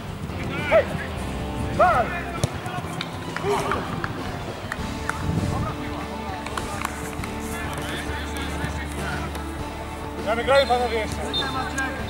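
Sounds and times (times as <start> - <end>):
players shouting: 0.1 - 12.0
ball being kicked: 2.2 - 4.1.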